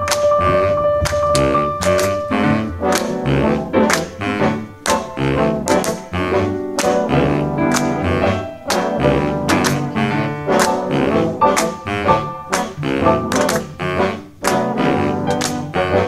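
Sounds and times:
hand claps on the beat: 0:00.0 - 0:10.0, 0:10.6 - 0:11.9, 0:12.5 - 0:13.8, 0:14.4 - 0:15.7
big band playing swing jazz: 0:00.0 - 0:16.0
baritone saxophone: 0:00.1 - 0:16.0.

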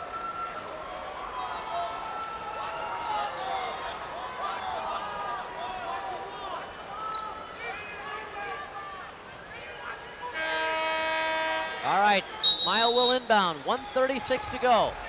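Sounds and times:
crowd voices and shouts: 0:00.0 - 0:15.0.

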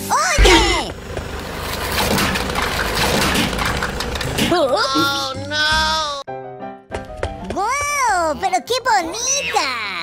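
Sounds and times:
car rumble: 0:00.4 - 0:04.6.

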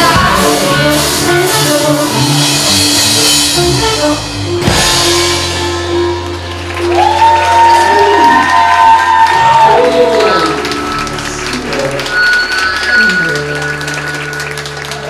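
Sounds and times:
live rock band playing: 0:00.0 - 0:15.0
audience applause: 0:05.5 - 0:15.0
singers holding long notes: 0:06.1 - 0:15.0.

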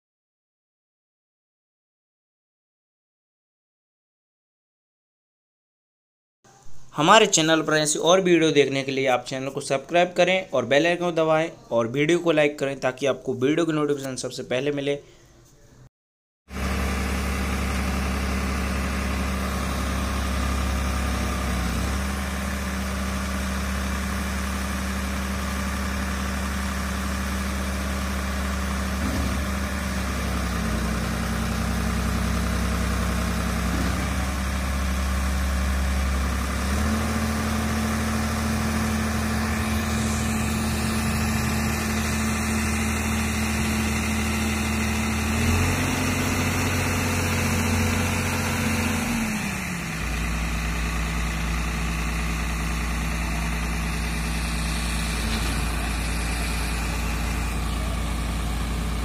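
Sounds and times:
tractor diesel engine running: 0:16.5 - 0:59.0.

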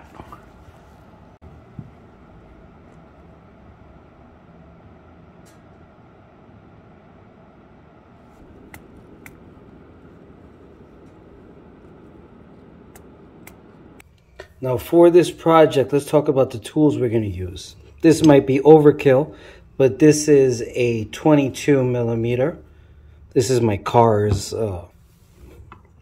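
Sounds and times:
room noise: 0:00.0 - 0:26.0.

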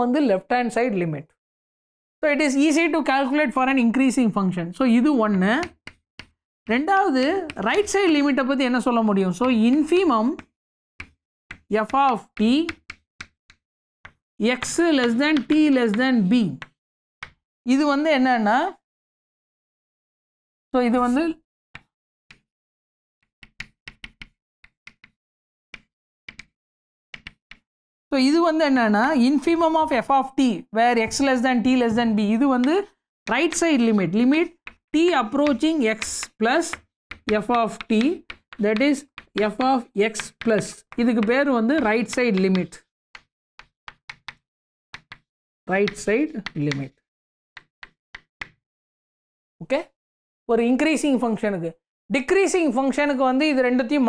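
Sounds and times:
chalk tapping on blackboard: 0:05.3 - 0:06.4, 0:09.4 - 0:15.7, 0:16.6 - 0:17.4, 0:23.4 - 0:25.2, 0:25.8 - 0:26.5, 0:27.2 - 0:27.6, 0:32.5 - 0:44.4, 0:45.0 - 0:47.0, 0:47.6 - 0:48.6.

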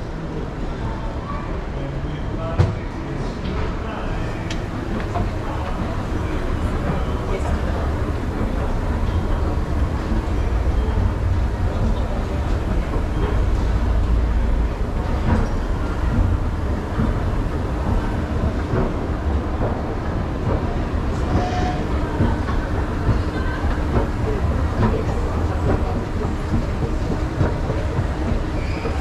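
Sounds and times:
escalator rumbling and rattling: 0:02.5 - 0:29.0.

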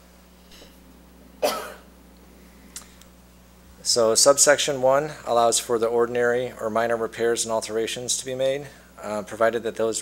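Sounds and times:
person coughing: 0:01.4 - 0:01.9.

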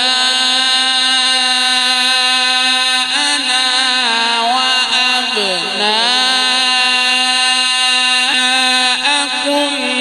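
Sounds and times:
man reciting melodically with echo: 0:00.0 - 0:10.0.

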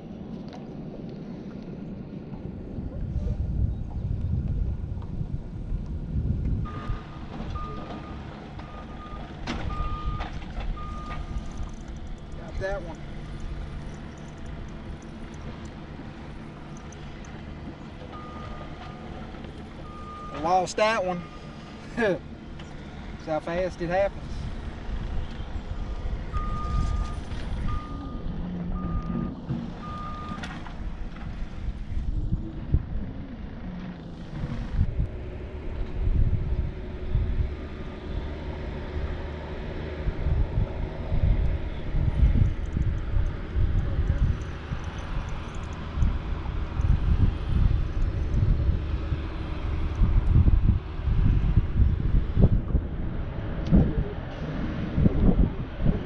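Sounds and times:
wind buffeting microphone: 0:00.0 - 0:20.3, 0:21.5 - 0:56.0
short electronic beeps: 0:06.7 - 0:10.2, 0:10.8 - 0:12.3, 0:18.2 - 0:19.1, 0:19.8 - 0:20.6, 0:21.2 - 0:21.7, 0:26.3 - 0:30.4.

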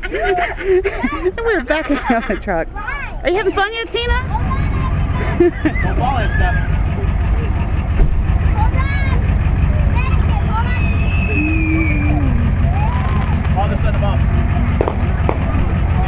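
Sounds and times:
truck engine running at low revs: 0:00.9 - 0:16.0
people shouting and chattering: 0:03.0 - 0:16.0.

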